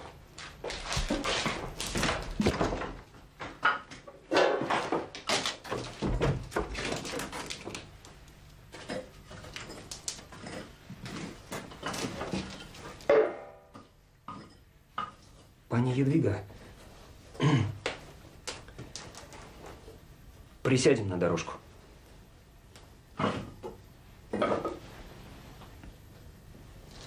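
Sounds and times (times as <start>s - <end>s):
knocks thuds and clatter: 0.8s - 7.7s.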